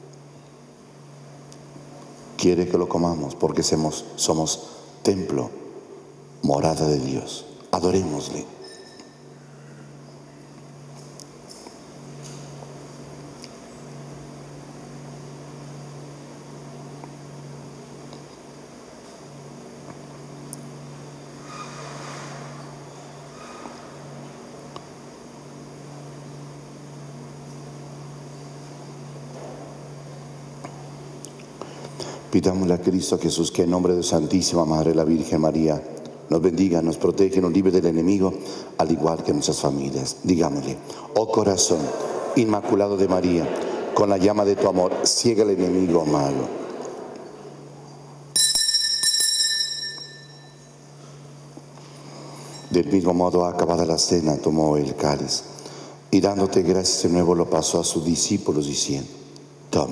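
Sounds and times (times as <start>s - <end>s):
room tone hiss: 0.0s - 59.9s
steady low hum: 0.0s - 59.9s
altar bell ringing: 48.3s - 50.7s.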